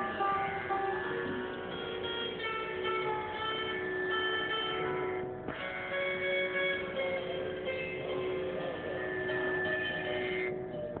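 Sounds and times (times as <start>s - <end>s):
sarod strings ringing: 0.0s - 11.0s.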